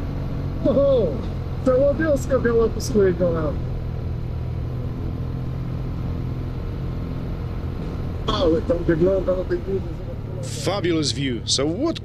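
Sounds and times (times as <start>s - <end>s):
motorcycle engine cruising: 0.0s - 12.0s
wind and road noise: 0.0s - 12.0s.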